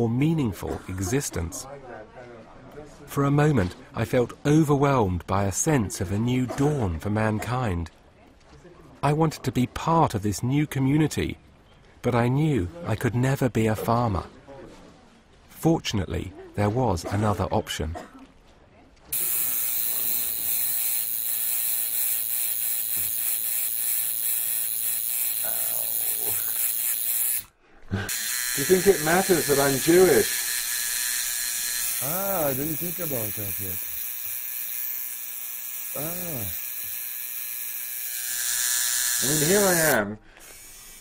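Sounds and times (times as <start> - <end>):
tattoo machine buzzing: 19.1 - 27.5, 28.1 - 41.0.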